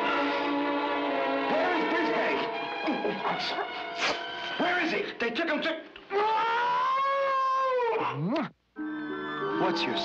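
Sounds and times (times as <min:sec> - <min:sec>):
long wailing cry: 0:06.1 - 0:08.2.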